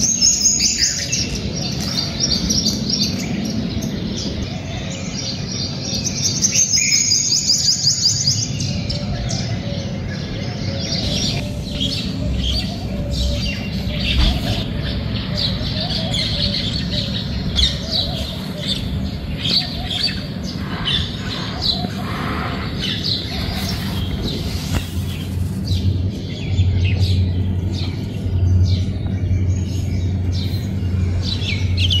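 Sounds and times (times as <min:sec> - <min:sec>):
small birds chirping: 0:00.0 - 0:32.0
steady low hum: 0:07.6 - 0:32.0.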